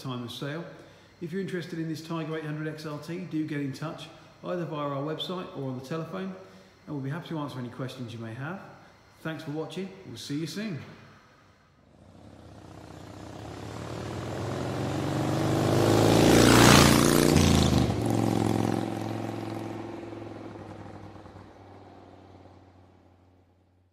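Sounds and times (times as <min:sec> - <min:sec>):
vehicle passing by: 0:11.9 - 0:23.0.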